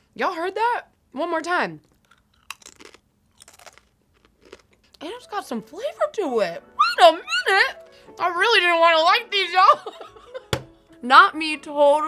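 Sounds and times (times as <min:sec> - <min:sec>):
tortilla chip crunching: 0:01.8 - 0:05.0.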